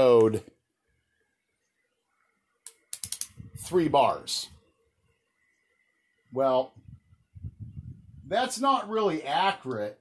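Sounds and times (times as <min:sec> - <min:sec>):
sharp clicks: 0:02.6 - 0:03.4.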